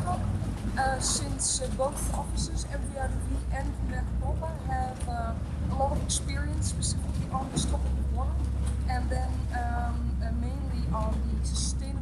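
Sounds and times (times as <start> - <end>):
woman speaking: 0.0 - 12.0.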